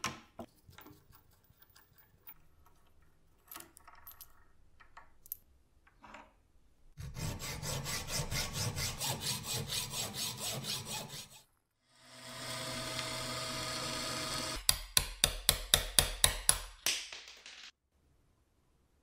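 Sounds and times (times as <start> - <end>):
hacksaw cutting steel: 7.0 - 11.4
hammer striking pin punch: 14.6 - 16.8.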